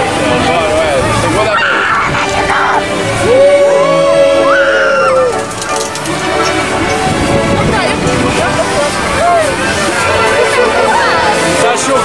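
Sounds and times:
music playing: 0.0s - 12.0s
person yelling on a ride: 1.4s - 5.4s
rising cries: 1.4s - 5.6s.

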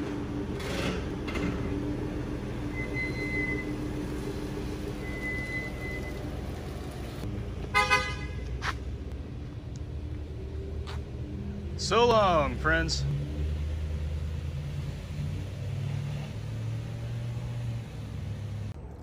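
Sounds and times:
vehicle engine idling: 0.0s - 13.1s
car horn toot: 7.7s - 8.5s.

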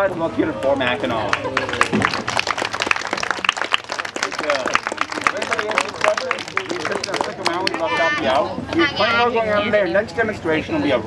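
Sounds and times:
people's voices: 0.0s - 11.0s
audience applauding: 1.0s - 8.3s.

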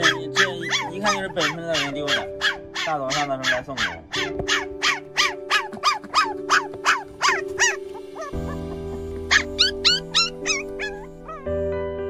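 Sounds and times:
puppies whimpering: 0.0s - 11.5s
background music: 0.0s - 12.0s.

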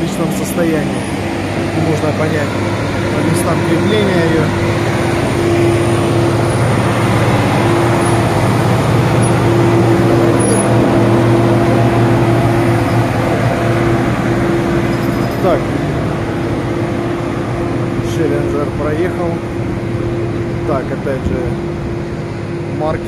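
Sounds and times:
vehicle engine humming: 0.0s - 23.0s.

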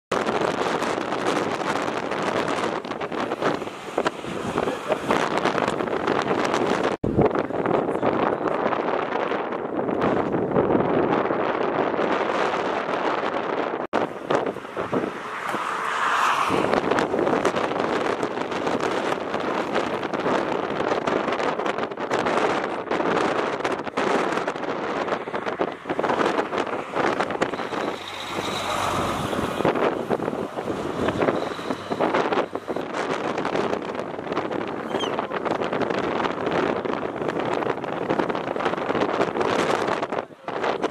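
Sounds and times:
road traffic noise: 0.1s - 40.9s
wind buffeting microphone: 0.1s - 40.9s
vehicle drone: 23.9s - 40.8s.

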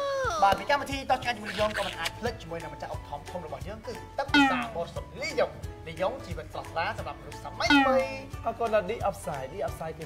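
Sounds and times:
background music: 0.0s - 10.0s
men talking: 0.0s - 10.0s.

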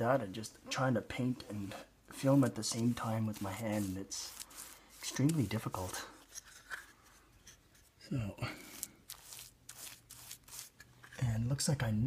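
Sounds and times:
scratchy paintbrush strokes on wood: 1.4s - 6.3s, 8.6s - 10.9s.

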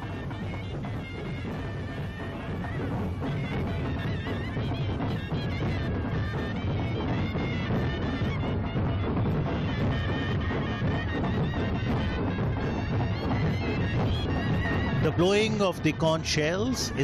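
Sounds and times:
barrel drums beating: 0.0s - 17.0s
wind instrument melody: 0.0s - 17.0s.

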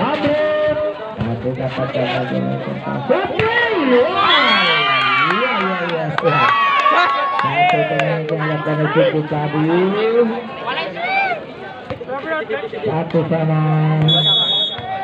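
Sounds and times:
spectators shouting and cheering: 3.1s - 11.9s, 13.8s - 15.0s.

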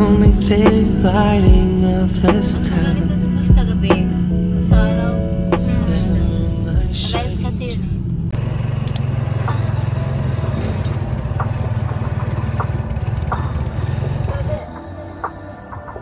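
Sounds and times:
motorcycle engine rumble: 0.0s - 16.0s
road noise: 0.0s - 16.0s.

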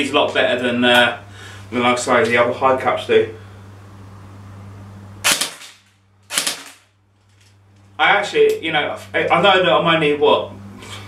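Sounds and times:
airsoft gun shots: 5.2s - 6.9s.

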